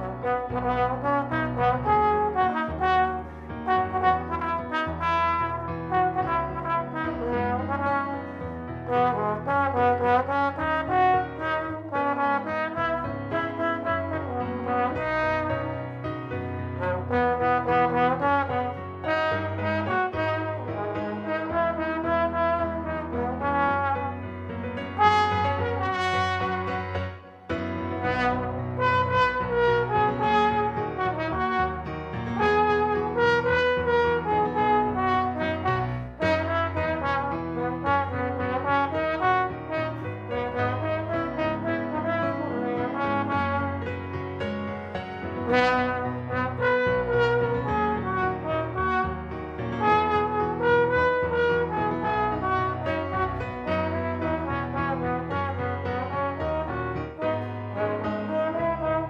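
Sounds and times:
trombone melody: 0.0s - 59.0s.

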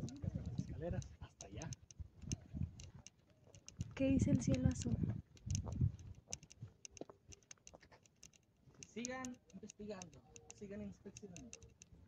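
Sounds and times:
footsteps on dirt path: 2.0s - 8.0s
camera handling noise: 4.5s - 10.6s.

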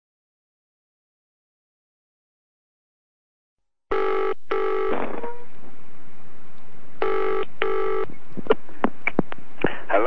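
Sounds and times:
telephone ringing: 3.9s - 5.4s, 7.0s - 8.1s.

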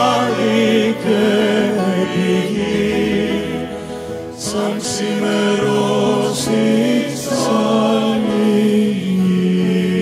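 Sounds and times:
choir singing slow chords: 0.0s - 10.0s.

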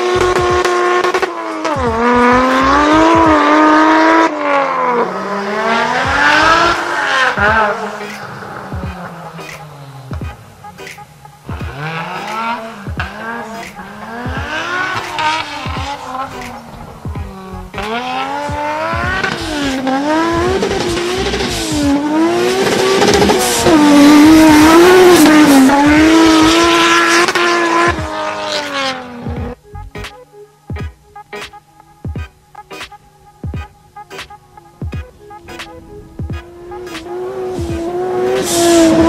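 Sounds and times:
engine revving hard: 0.0s - 9.2s, 11.6s - 29.6s, 36.4s - 39.0s.

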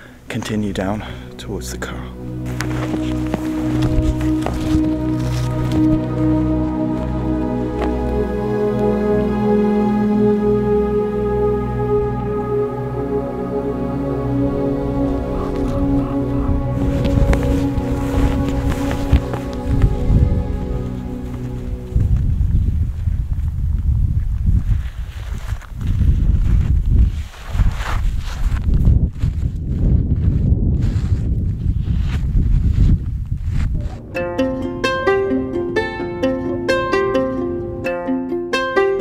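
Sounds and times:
soft instrumental music: 0.0s - 22.8s, 33.8s - 39.0s
plucked-string music: 0.3s - 22.6s, 33.8s - 39.0s
wind buffeting microphone: 14.5s - 36.7s.

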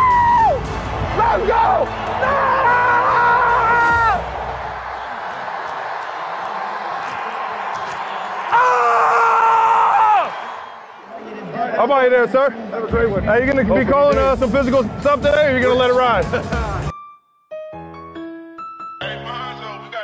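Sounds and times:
stadium crowd noise: 0.0s - 16.9s.

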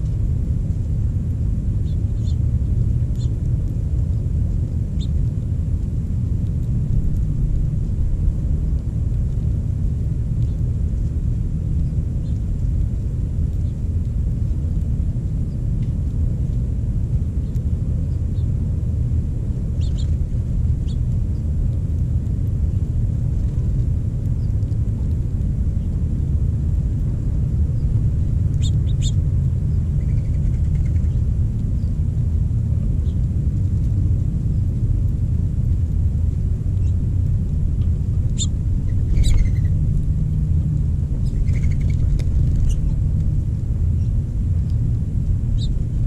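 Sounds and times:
steady low rumble outdoors: 0.0s - 46.0s.

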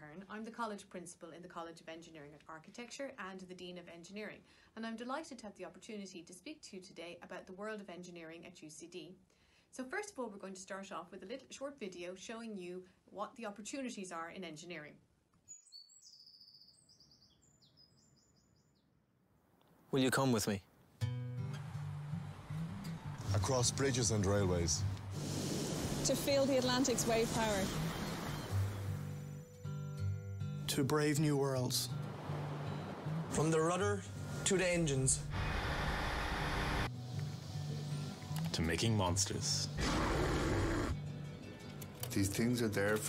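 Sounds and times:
small birds chirping faintly: 15.4s - 19.9s
engine room machinery noise: 34.3s - 36.9s.

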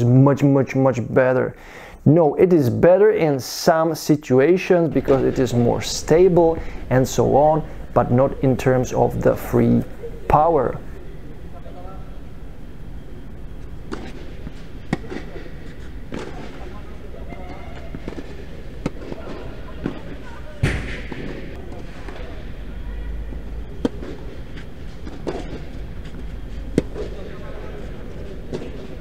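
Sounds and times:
low steady hum: 0.0s - 29.0s
tennis ball bouncing: 13.6s - 22.4s, 23.3s - 27.4s, 28.0s - 29.0s
racket hitting tennis ball: 13.7s - 22.4s, 23.3s - 29.0s.

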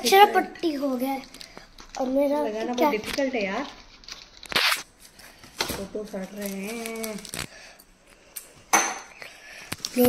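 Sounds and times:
wrapper crackling rustle: 1.1s - 7.7s.

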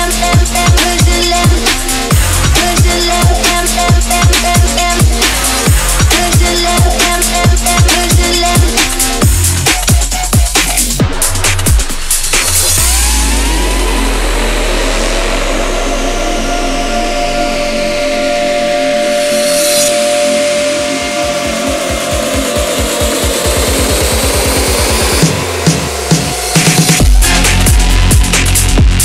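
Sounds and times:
sweeping effects: 12.6s - 29.0s
held synth chord: 13.0s - 29.0s
rapid repeating drum roll: 20.9s - 29.0s.

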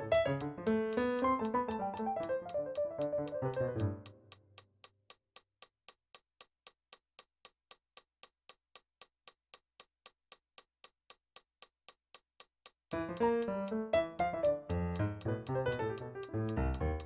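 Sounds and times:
digital piano notes: 0.0s - 4.1s, 12.9s - 17.0s
metronome clicking: 0.0s - 8.8s, 12.1s - 17.0s.

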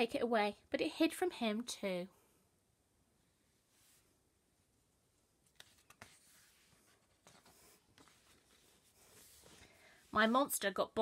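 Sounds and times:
paper page turning: 5.5s - 9.7s.

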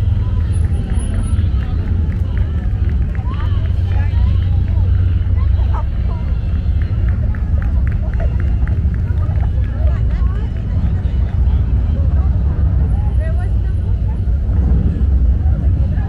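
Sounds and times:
people chattering: 0.0s - 16.0s
vehicles rumbling past: 0.0s - 16.0s.

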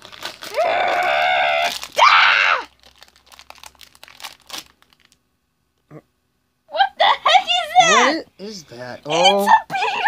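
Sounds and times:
foil packaging crinkling and tearing: 0.0s - 5.2s.

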